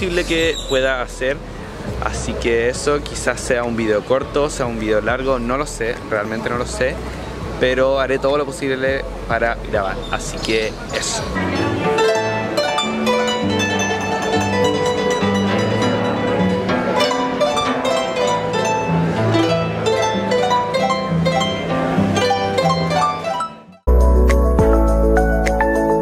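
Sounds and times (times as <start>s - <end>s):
harp plucked melody: 9.1s - 26.0s.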